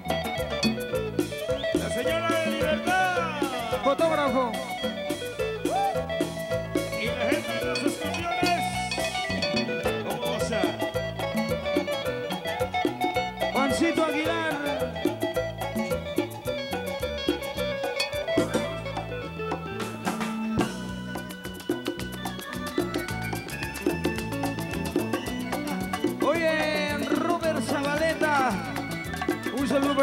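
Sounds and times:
bass line: 0:00.0 - 0:30.0
electric guitar lead: 0:00.0 - 0:30.0
keyboard: 0:00.0 - 0:30.0.

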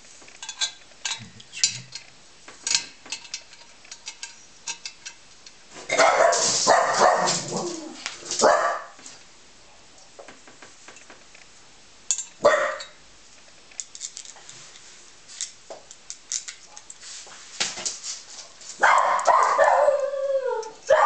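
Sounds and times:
small brass parts clicking: 0:00.4 - 0:05.6, 0:13.7 - 0:14.4, 0:15.4 - 0:17.0.

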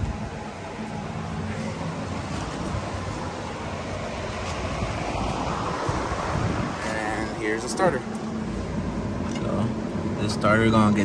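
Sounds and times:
wind on microphone: 0:02.2 - 0:07.4.

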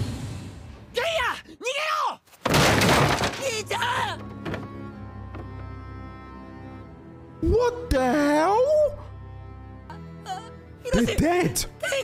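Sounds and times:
loud shattering crash: 0:02.5 - 0:03.6
sustained music: 0:03.5 - 0:12.0.

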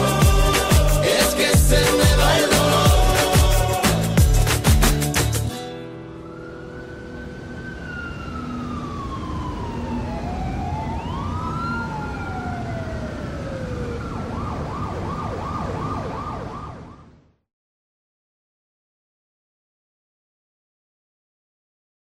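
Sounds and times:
sirens wailing: 0:05.9 - 0:17.2.

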